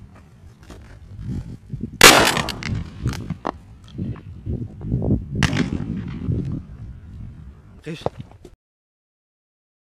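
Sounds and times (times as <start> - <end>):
shotgun shot: 2.0 - 3.0, 5.4 - 6.3.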